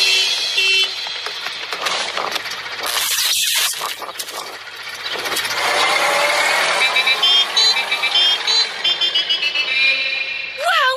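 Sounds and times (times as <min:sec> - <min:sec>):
high-pitched horn tune: 0:00.0 - 0:01.0
cartoon car engine rushing: 0:01.4 - 0:10.9.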